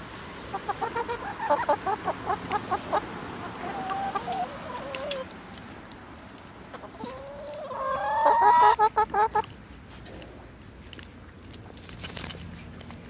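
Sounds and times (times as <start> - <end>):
chickens clucking: 0.4 - 10.6.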